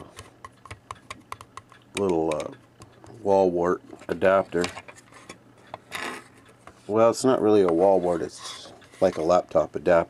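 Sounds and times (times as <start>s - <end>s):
rustling scrape: 7.8s - 9.3s.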